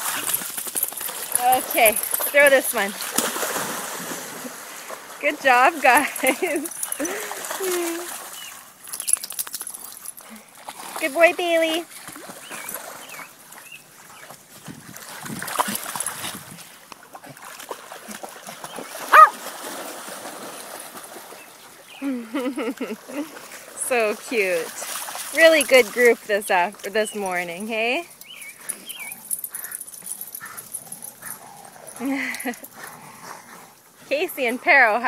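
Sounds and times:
dogs splashing in water: 0.0 - 33.4.

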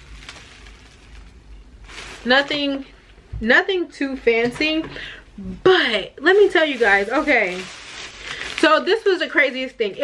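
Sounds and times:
notebook pages rustling: 6.6 - 8.8.

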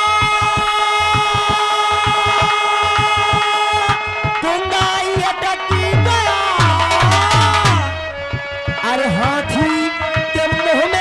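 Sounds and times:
person singing: 0.0 - 11.0
drums fast beat: 0.3 - 11.0.

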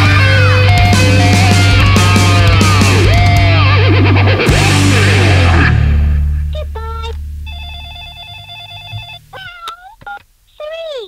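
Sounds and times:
low rock chord ringing: 0.0 - 8.3.

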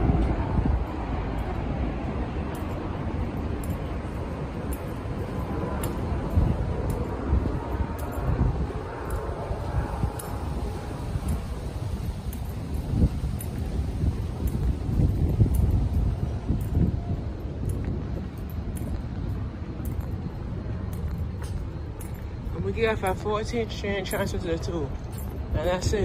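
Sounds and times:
distant traffic: 0.0 - 26.0
wind buffeting microphone: 0.0 - 26.0.

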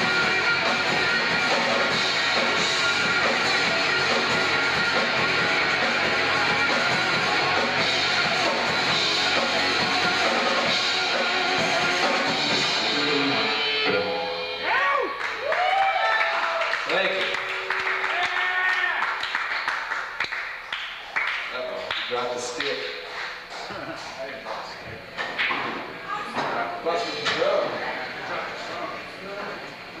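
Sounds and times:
live rock band playing: 0.0 - 14.7.

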